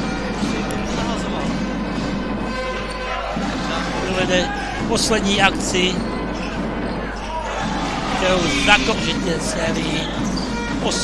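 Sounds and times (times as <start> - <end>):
music: 0.0 - 11.0
background voices: 7.8 - 9.6.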